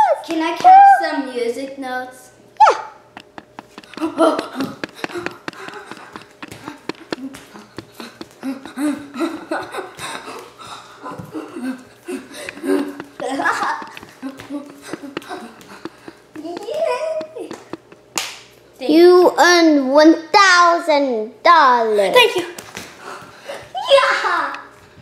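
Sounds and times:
small clicks and taps: 3.1s - 8.4s, 12.4s - 18.4s
children talking and laughing: 3.2s - 18.1s, 23.5s - 24.8s.

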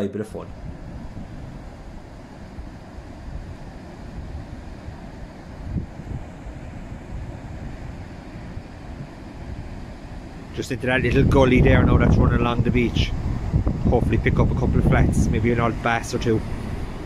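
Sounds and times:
wind buffeting microphone: 0.4s - 17.0s
surf breaking on beach: 0.5s - 17.0s.

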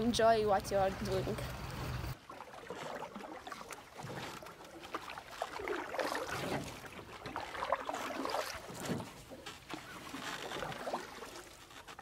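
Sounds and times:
water trickling and gurgling: 0.0s - 12.0s.

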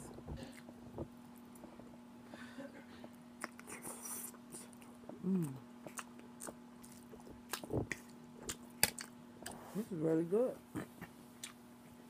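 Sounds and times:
steady low hum: 0.0s - 12.0s
person chewing noodles: 3.0s - 9.7s
person humming: 5.1s - 5.7s.

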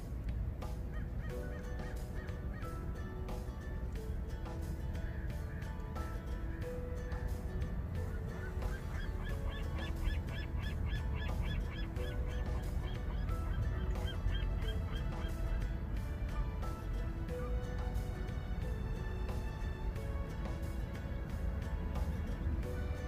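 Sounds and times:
soft background music: 0.0s - 23.0s
bird calling: 0.8s - 3.2s, 8.0s - 18.0s.

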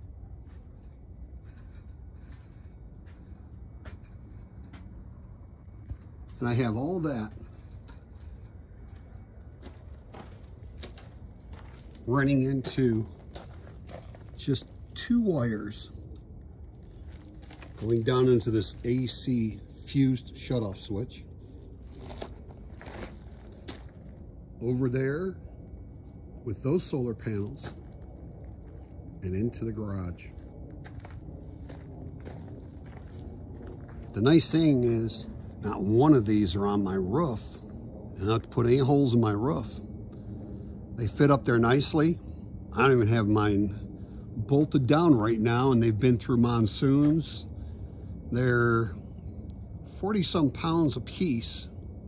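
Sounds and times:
steady low rumble: 0.0s - 52.0s
footsteps on gravel: 8.9s - 15.0s, 16.8s - 18.8s, 21.8s - 24.2s, 30.2s - 34.3s.

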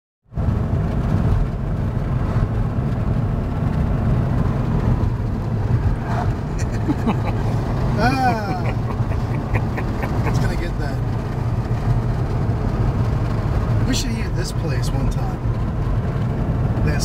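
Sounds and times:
car road and engine rumble: 0.3s - 17.0s.

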